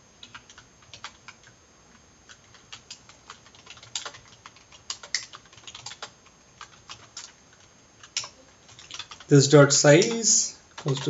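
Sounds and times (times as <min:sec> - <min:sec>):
keyboard key clicks: 0:10.0 - 0:11.0.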